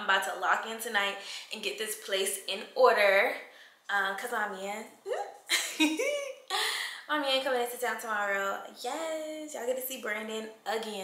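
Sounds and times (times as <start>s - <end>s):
woman speaking: 0.0s - 11.0s
woman giggling: 5.1s - 6.9s.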